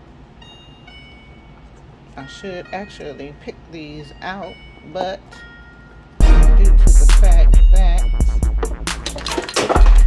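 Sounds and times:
soft bell-like chimes: 0.4 - 6.2.

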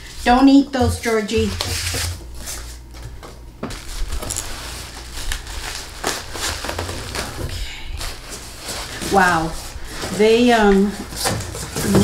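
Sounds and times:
bubble wrap rustling and crinkling: 3.6 - 12.0.

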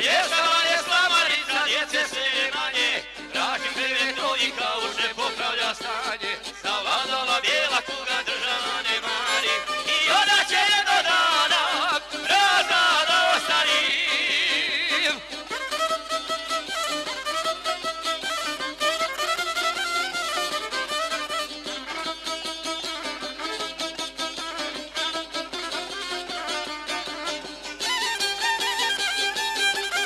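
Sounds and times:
man singing with vibrato: 0.0 - 15.7
fiddle melody: 0.0 - 30.0
rapidly strummed lute: 0.0 - 30.0.

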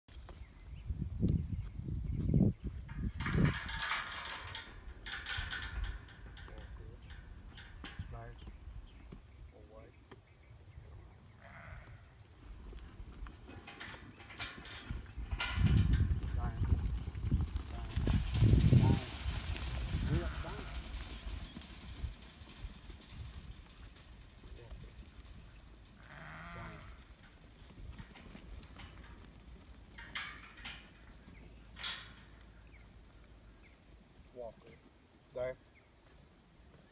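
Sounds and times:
knocks and clatters: 2.8 - 8.6, 13.3 - 25.6, 27.2 - 32.4
sheep bleating: 11.4 - 12.0, 26.0 - 26.9
hooves running on dirt: 12.0 - 36.9.

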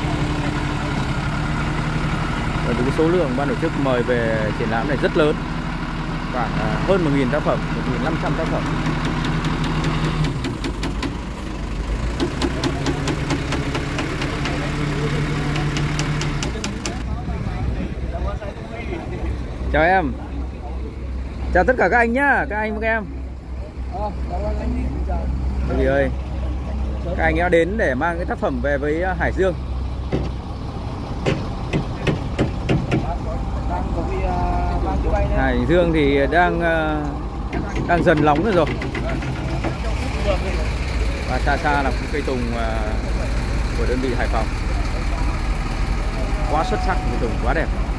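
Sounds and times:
crane engine humming: 0.0 - 47.9
man talking: 2.6 - 5.4, 6.3 - 8.9, 33.0 - 45.5, 46.1 - 47.9
sharp knocks: 8.8 - 11.2, 12.2 - 14.6, 30.1 - 30.4, 31.2 - 33.1, 37.5 - 39.8
rapid irregular clicking: 15.4 - 17.1, 37.5 - 40.1.

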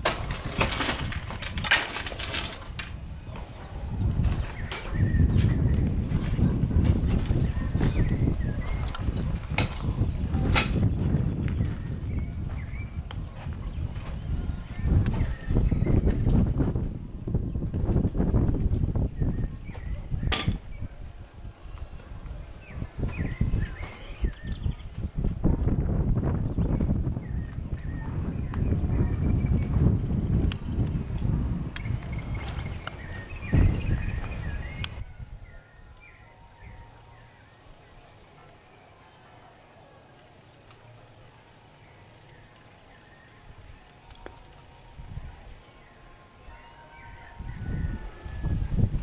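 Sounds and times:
microphone handling noise: 0.0 - 20.9
wind rumble on microphone: 0.0 - 37.2, 43.1 - 45.9, 46.5 - 49.0
small birds chirping: 3.0 - 16.7, 18.4 - 25.1, 31.8 - 44.5.

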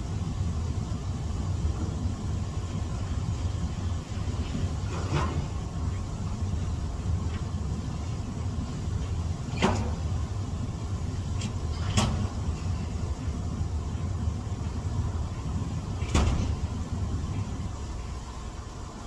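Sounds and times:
jacuzzi jets churning water: 0.0 - 19.0.

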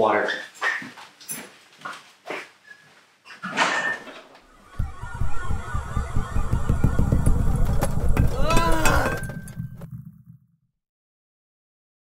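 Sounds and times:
low throbbing sci-fi drone: 4.6 - 10.0.

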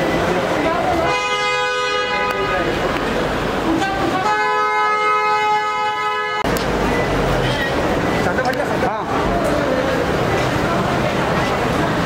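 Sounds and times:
car horn blast: 1.0 - 2.7, 3.8 - 6.5.

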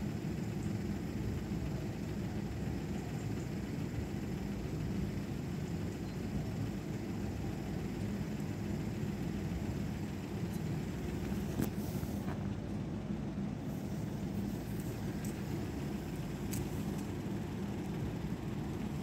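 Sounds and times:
low rumble of road traffic: 0.0 - 19.0.

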